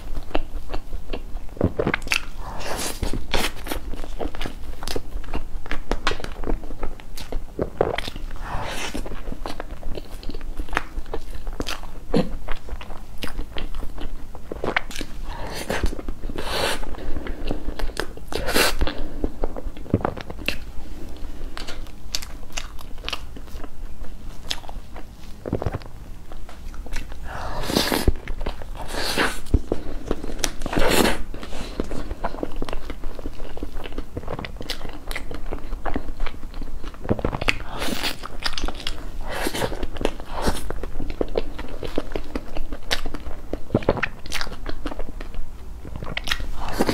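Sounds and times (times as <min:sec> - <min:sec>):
person chewing cake: 0:00.0 - 0:46.9.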